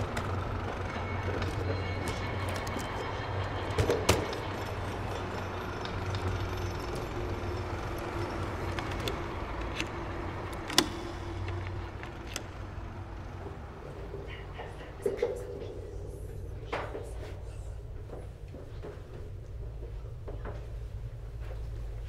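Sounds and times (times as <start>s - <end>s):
street traffic hum: 0.0s - 19.0s.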